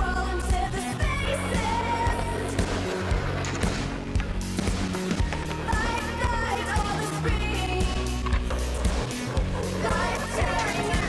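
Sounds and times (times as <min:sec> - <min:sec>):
song with singing over beat: 0:05.1 - 0:11.0.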